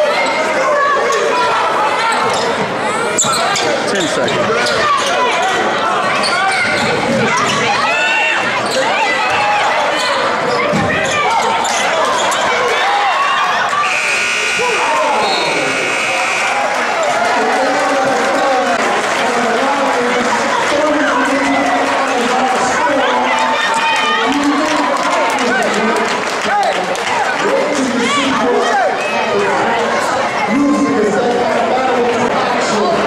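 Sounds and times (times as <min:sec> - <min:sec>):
crowd shouting: 0:04.5 - 0:25.8
scoreboard horn: 0:13.8 - 0:17.0.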